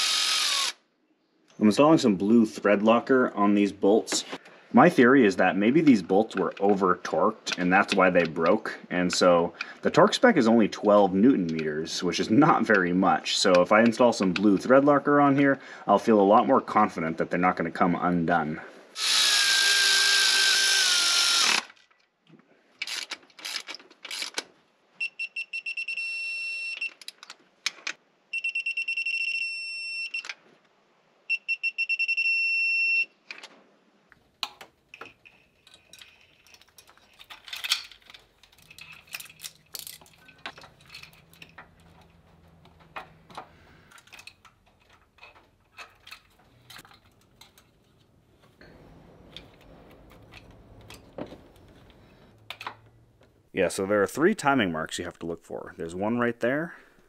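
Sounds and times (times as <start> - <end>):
electric ratchet whirring: 0.0 - 0.8, 19.0 - 21.8
metallic clicks and rattles: 34.4 - 53.3.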